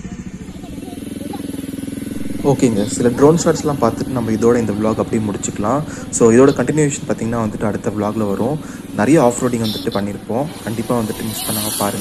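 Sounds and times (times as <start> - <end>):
faint voices: 0.0 - 12.0
motorcycle engine idling: 0.0 - 12.0.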